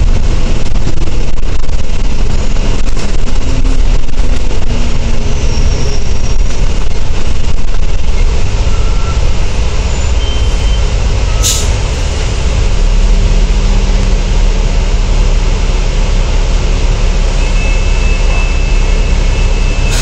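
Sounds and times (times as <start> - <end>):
bus diesel engine rumble: 0.0 - 20.0
short sharp hiss: 11.4 - 11.8.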